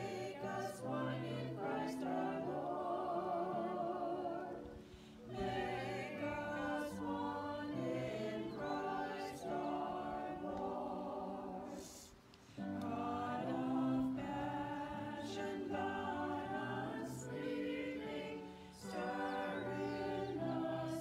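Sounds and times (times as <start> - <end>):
vocal group singing a hymn: 0.0 - 21.0.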